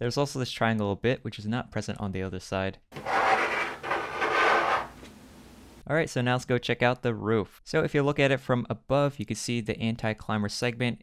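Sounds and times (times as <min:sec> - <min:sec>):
model locomotive scraping on tabletop: 0:03.0 - 0:05.1.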